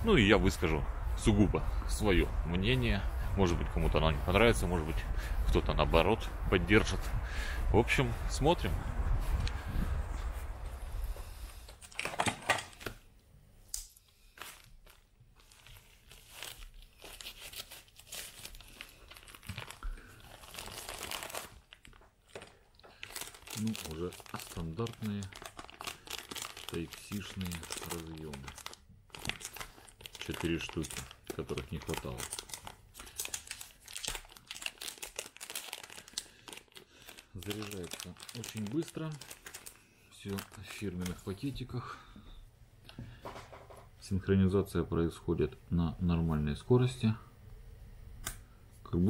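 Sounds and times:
packaging crinkling and tearing: 14.2s - 41.5s
paper packets rustling: 14.2s - 41.7s.

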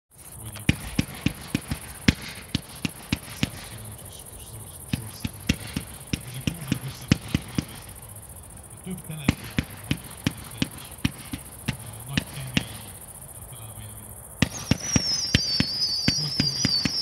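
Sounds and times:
firework launch reports: 0.2s - 8.1s, 8.7s - 17.0s.

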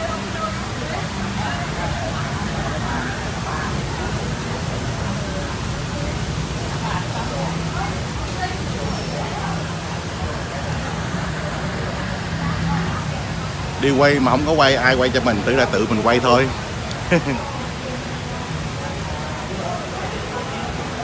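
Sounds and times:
indistinct chatter: 0.0s - 21.0s.

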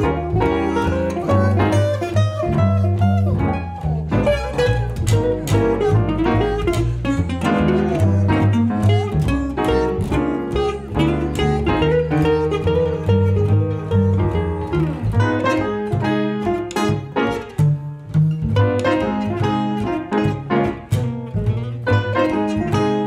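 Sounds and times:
grand piano: 0.0s - 23.0s
jazz guitar: 0.0s - 23.0s
plucked upright bass: 0.0s - 23.0s.

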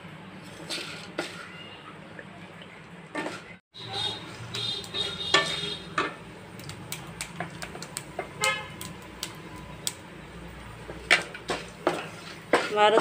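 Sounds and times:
spatula scraping spices in a pan: 0.3s - 1.7s, 3.2s - 6.3s, 10.8s - 13.0s.

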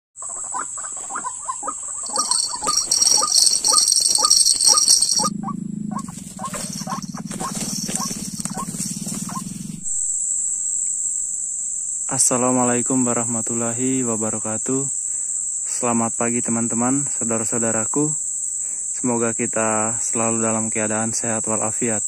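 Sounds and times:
waterhen calling: 0.2s - 5.3s, 5.9s - 9.4s
high insect drone: 0.2s - 22.0s.

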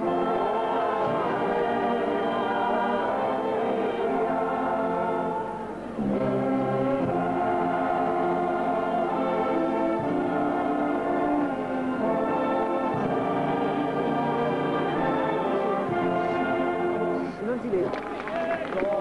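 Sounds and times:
brass band playing slow chords: 0.0s - 17.7s.

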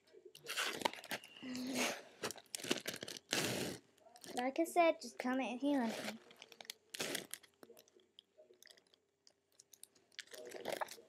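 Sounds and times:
plastic pages crinkling: 0.4s - 1.6s, 2.2s - 3.5s, 5.8s - 9.0s.

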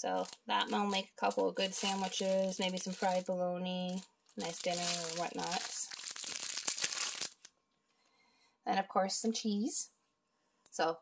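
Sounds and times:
plastic packaging crinkling: 0.0s - 7.5s.

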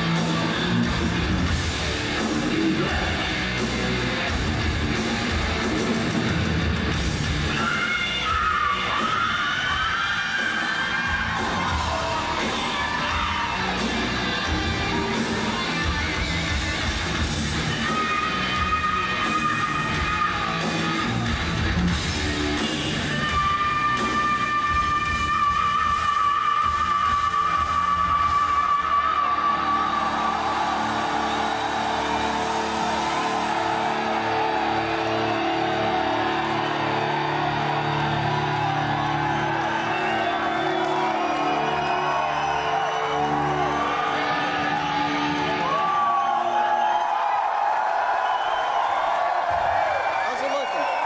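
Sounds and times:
heavy metal band playing live: 0.0s - 45.9s
crowd cheering and whooping: 0.0s - 51.0s.

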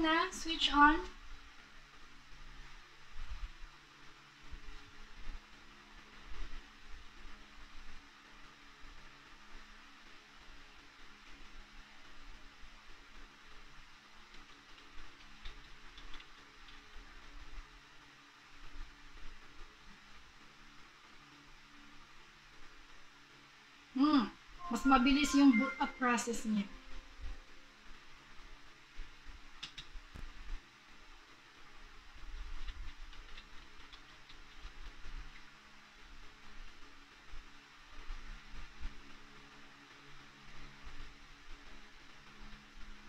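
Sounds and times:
faint hum and hiss: 0.0s - 43.0s.

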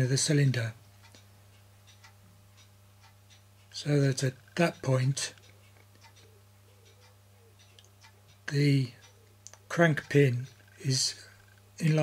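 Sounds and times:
faint mechanical ticks: 0.0s - 12.0s
low steady hum: 0.0s - 12.0s.

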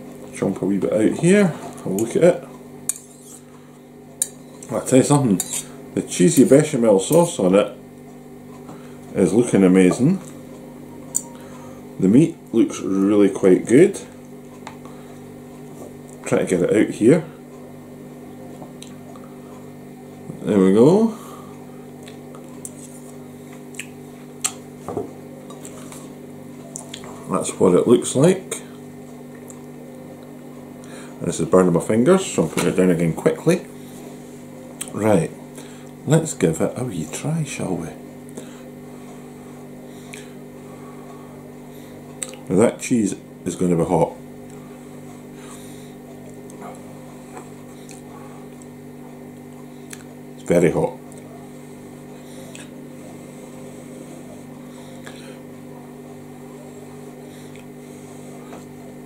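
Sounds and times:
low electrical hum: 0.0s - 59.0s.

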